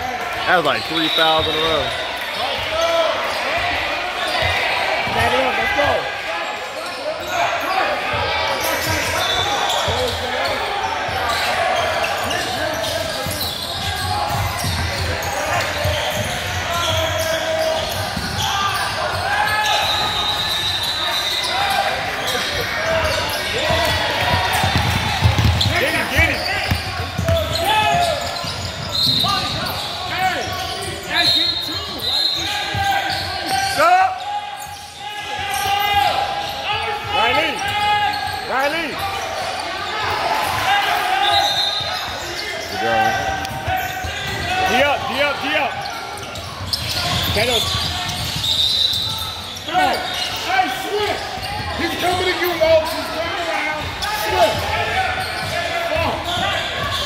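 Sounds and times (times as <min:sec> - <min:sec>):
voices echoing in hall: 0:00.0 - 0:57.0
sneakers squeaking: 0:00.2 - 0:57.0
basketball bouncing on court: 0:08.1 - 0:20.0, 0:22.2 - 0:31.1, 0:45.8 - 0:49.5.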